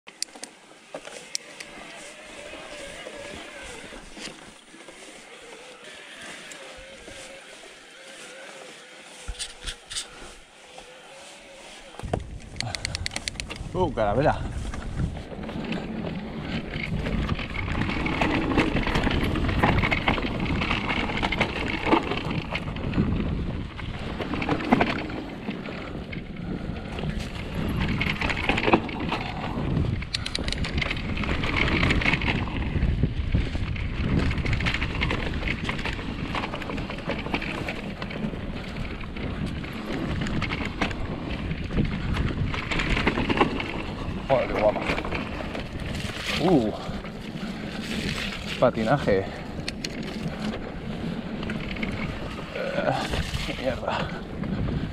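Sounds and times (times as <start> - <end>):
bike rattling over bumps: 0.1 - 54.9
tyres rolling over dirt: 0.6 - 12.5, 13.2 - 54.9
wind on microphone: 11.6 - 54.9.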